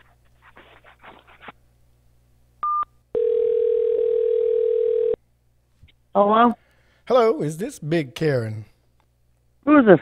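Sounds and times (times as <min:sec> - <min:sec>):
phone ringback tone: 0:02.6 - 0:05.2.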